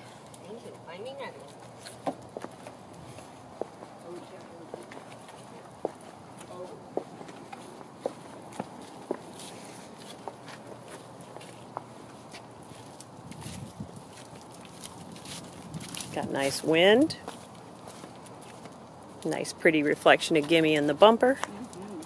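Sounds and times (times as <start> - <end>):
faint outdoor background: 0.0 - 22.0
footsteps on asphalt: 1.4 - 16.2, 16.8 - 19.2.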